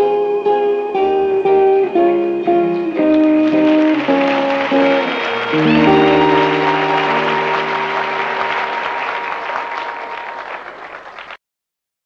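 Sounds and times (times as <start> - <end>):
held accompaniment chord: 0.1 - 10.7
audience applause: 2.6 - 11.4.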